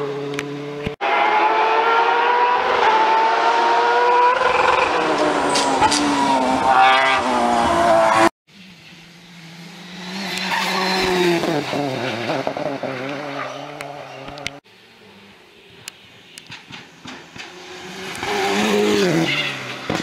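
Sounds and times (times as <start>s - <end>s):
rally car approaching: 17.0s - 20.0s.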